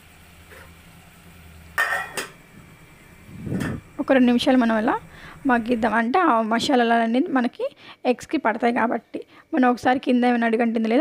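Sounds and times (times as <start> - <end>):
metal pot lid clanking: 1.8 - 2.4.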